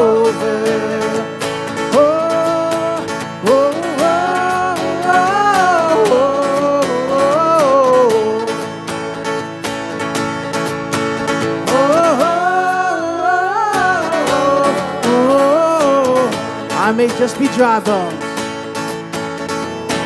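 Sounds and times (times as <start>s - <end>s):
person singing: 0.0s - 8.8s, 11.4s - 18.3s
keyboard: 0.0s - 20.0s
strummed acoustic guitar: 0.0s - 20.0s.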